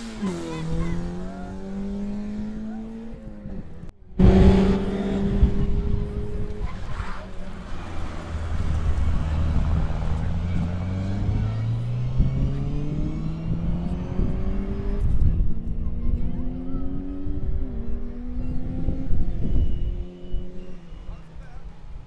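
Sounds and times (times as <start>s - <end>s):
rally car engine accelerating: 0.0s - 21.2s.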